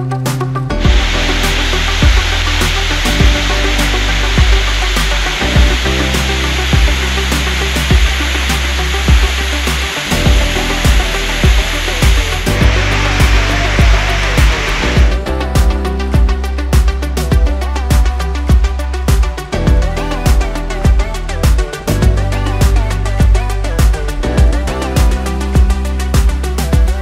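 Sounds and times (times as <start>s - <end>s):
music with steady drum beat: 0.0s - 27.0s
loud even hissing: 0.8s - 15.5s.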